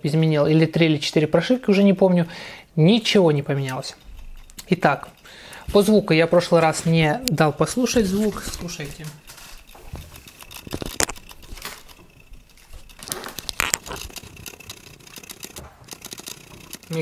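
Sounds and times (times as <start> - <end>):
camera handling noise: 9.2 - 12.0, 12.6 - 16.4
lens autofocus motor clicking and buzzing: 9.3 - 17.0.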